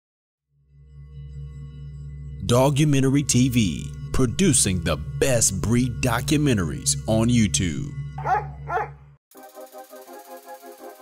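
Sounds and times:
low droning music: 0.5 - 11.0
dog barks: 8.2 - 9.0.

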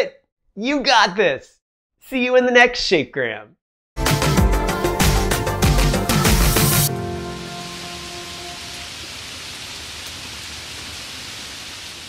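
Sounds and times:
rain-like hiss: 6.6 - 12.0.

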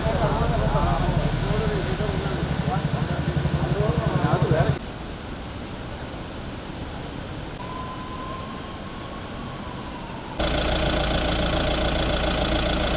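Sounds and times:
vehicle engine idling: 0.0 - 4.8, 10.4 - 12.9
outdoor hiss: 0.0 - 12.9.

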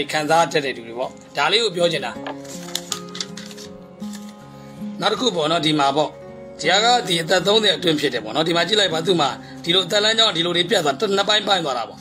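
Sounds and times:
soft background music: 0.0 - 12.0
paper rustling and crackling: 2.2 - 4.4.

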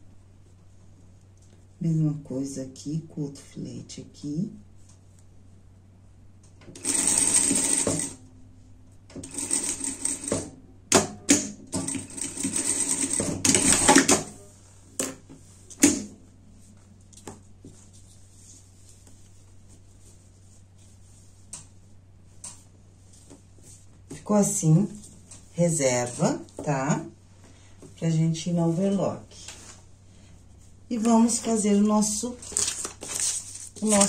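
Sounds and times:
sewing machine stitching: 6.8 - 8.2.

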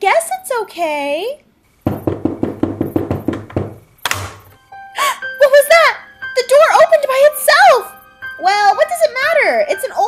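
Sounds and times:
light hollow knocks: 1.8 - 4.6.

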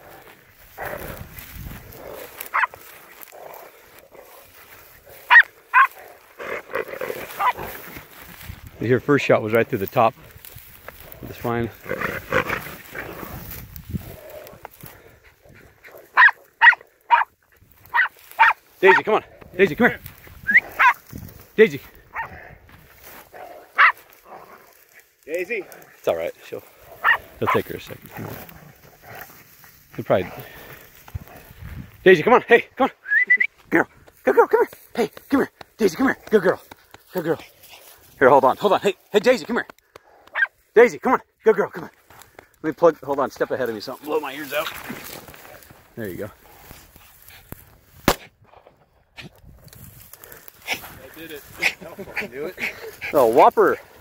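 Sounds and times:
dog barking: 2.5 - 2.8, 5.3 - 6.1, 16.1 - 17.3, 17.9 - 19.0, 20.5 - 21.0, 23.4 - 24.0, 27.0 - 27.6, 40.3 - 40.5
rifle shot: 48.0 - 48.7.

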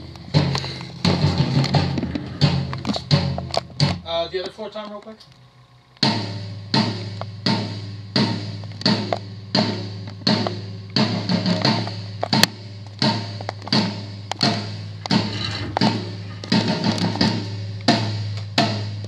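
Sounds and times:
floor tom drum hits: 6.0 - 19.0.

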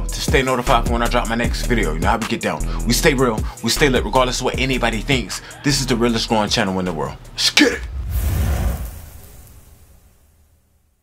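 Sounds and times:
deep whoosh with low rumble: 7.8 - 10.4.

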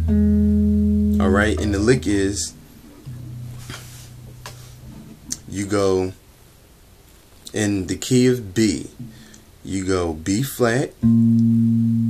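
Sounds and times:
electric bass note ringing: 11.0 - 12.0.

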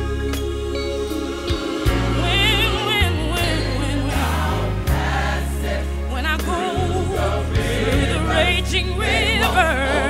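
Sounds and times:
gospel choir singing: 0.0 - 10.0
instrumental backing: 0.0 - 10.0.

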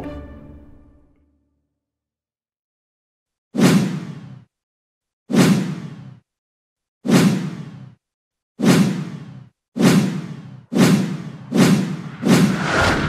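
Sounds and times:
whoosh sound effects: 10.8 - 13.0.

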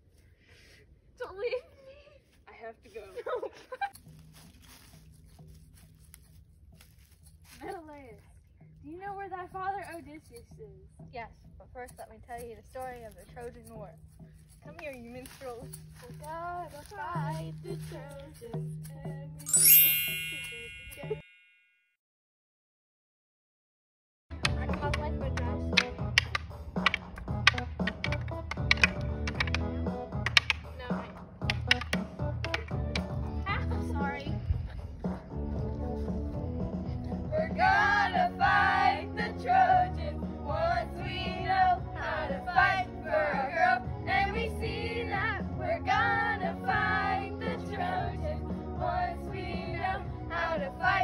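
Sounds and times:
background music held notes: 4.0 - 21.4, 24.3 - 51.0
wooden sticks clacking: 24.4 - 33.2.

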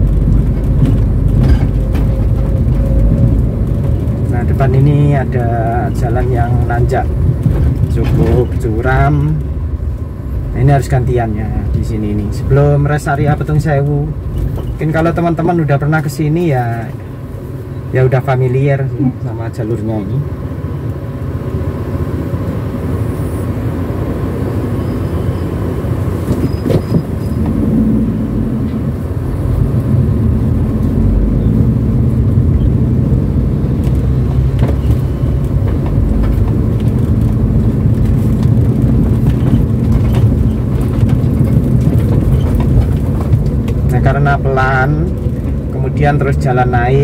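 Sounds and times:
car engine under load: 0.0 - 47.0
road noise: 0.0 - 47.0.

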